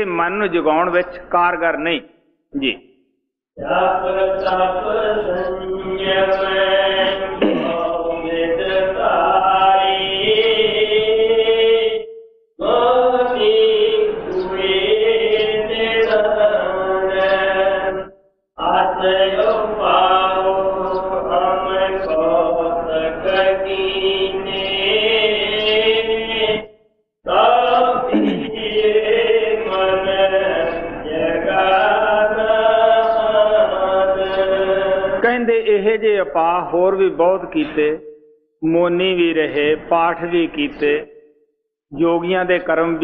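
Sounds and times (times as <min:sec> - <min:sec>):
person chanting devotional verse: 0:00.0 - 0:03.0, 0:03.6 - 0:26.7, 0:27.3 - 0:41.3, 0:41.9 - 0:43.0.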